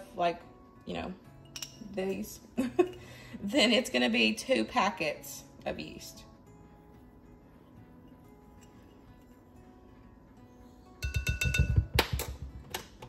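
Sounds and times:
plastic spoon knocking glass bowl: 0:11.0 - 0:12.8.

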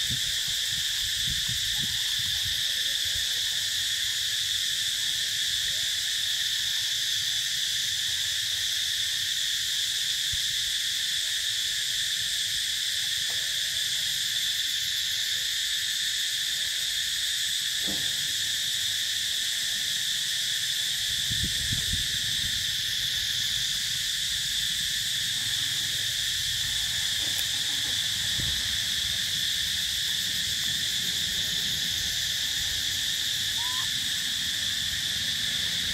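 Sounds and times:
insect chorus drone: 0:00.0 - 0:35.9.

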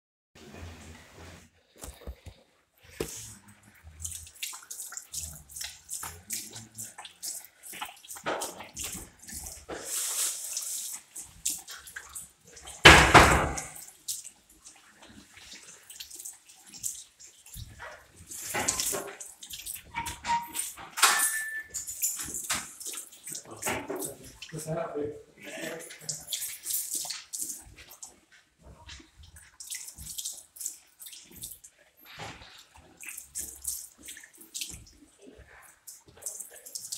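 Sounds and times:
tap water splashing into basin: 0:03.9 - 0:24.8.

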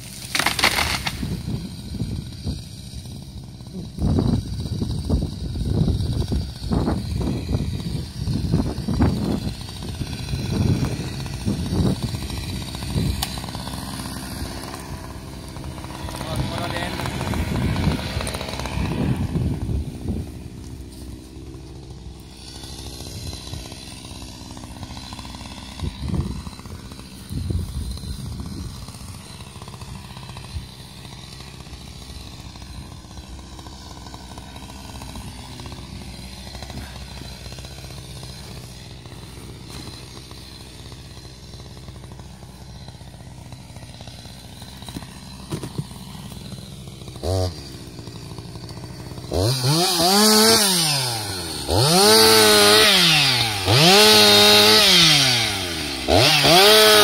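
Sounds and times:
chainsaw engine idling: 0:00.0 - 0:57.0.

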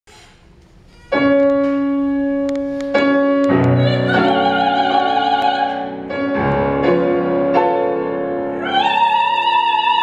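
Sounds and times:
grand piano chords: 0:01.1 - 0:10.0.

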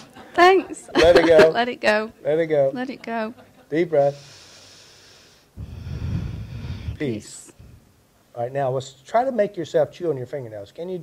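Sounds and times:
person breathing deeply: 0:04.1 - 0:07.8
breath blowing on microphone: 0:04.2 - 0:07.9.

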